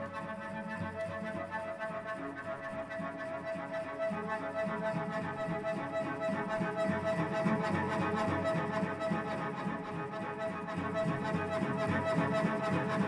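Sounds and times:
cello bowing: 0:00.0 - 0:13.0.

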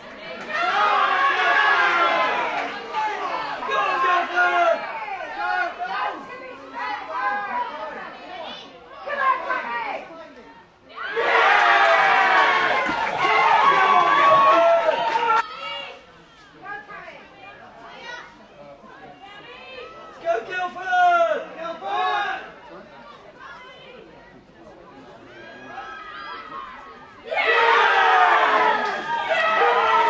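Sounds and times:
people shouting and calling: 0:25.4 - 0:30.0.

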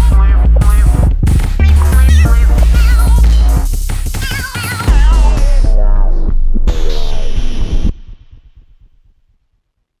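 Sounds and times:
drum and bass beat: 0:00.0 - 0:09.5.

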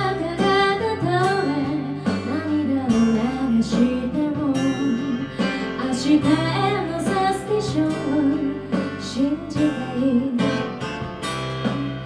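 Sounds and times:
woman singing into a microphone: 0:00.0 - 0:10.8, 0:11.6 - 0:12.0
strummed acoustic guitar: 0:00.0 - 0:12.0.

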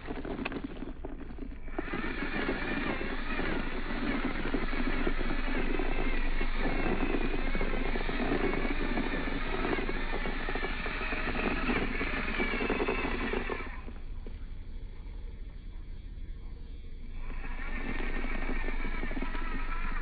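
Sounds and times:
rc car electric motor whining: 0:00.0 - 0:14.4, 0:17.0 - 0:20.0.

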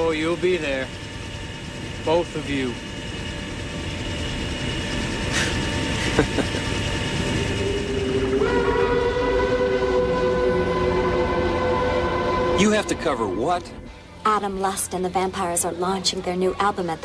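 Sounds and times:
helicopter running: 0:00.0 - 0:17.0
held horn-like chord: 0:07.0 - 0:14.6.

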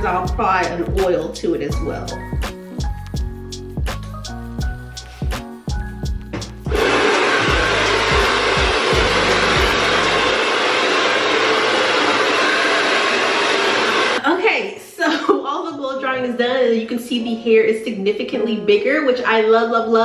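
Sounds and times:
background music: 0:00.0 - 0:10.4, 0:16.9 - 0:20.0
blow dryer running: 0:06.4 - 0:14.2.

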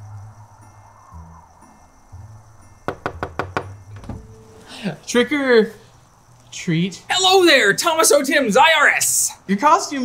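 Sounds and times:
soft music with low bass: 0:00.0 - 0:06.3
knocks on a door: 0:02.9 - 0:04.4.

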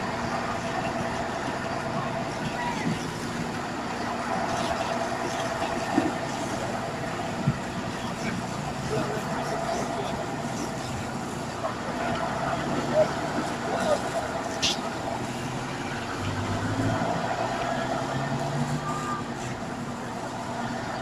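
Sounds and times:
vehicles driving past: 0:00.0 - 0:21.0.

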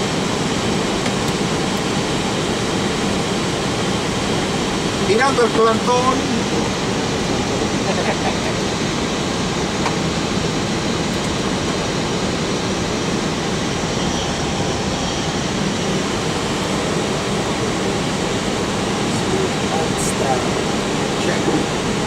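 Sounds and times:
aircraft engines humming: 0:00.0 - 0:22.0
airflow rushing: 0:02.7 - 0:22.0.

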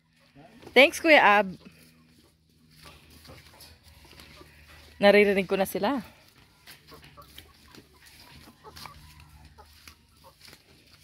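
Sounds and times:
chickens clucking faintly: 0:00.0 - 0:11.0.

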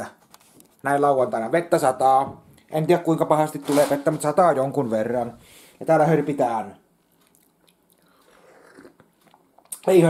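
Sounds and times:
man slurping and gulping: 0:07.2 - 0:09.8.

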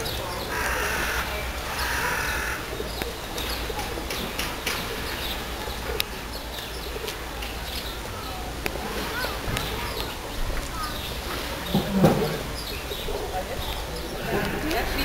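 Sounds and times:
steady background noise: 0:00.0 - 0:15.0.

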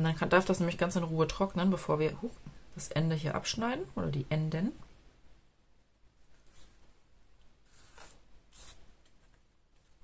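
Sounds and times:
paper rustling on craft mat: 0:06.2 - 0:07.0, 0:07.6 - 0:10.0.

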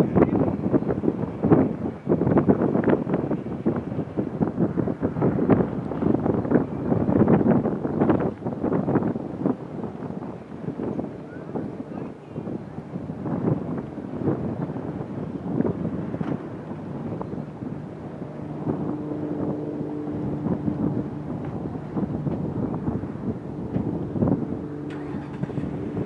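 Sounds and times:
wind buffeting microphone: 0:00.0 - 0:26.0.

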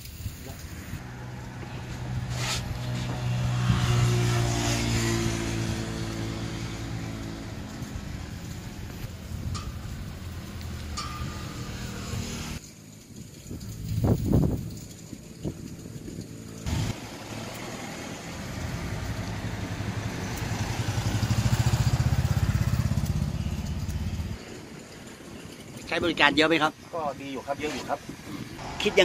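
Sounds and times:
vehicle engine rumbling: 0:00.0 - 0:29.0.

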